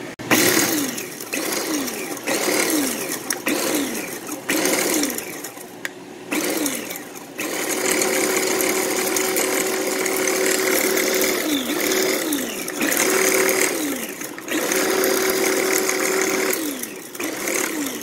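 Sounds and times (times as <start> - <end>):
electric food chopper motor whine: 0.0 - 18.0.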